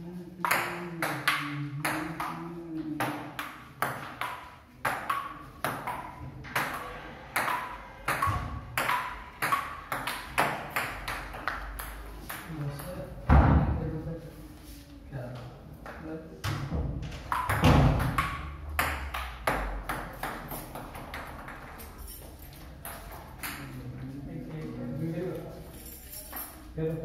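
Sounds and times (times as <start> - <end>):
ping pong ball clicking: 0.4 - 6.8, 7.4 - 13.0, 17.3 - 21.8.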